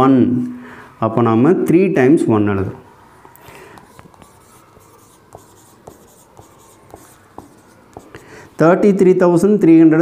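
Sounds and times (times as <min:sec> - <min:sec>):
marker writing on whiteboard: 0:03.5 - 0:08.6
marker tapping on whiteboard: 0:03.7 - 0:08.2.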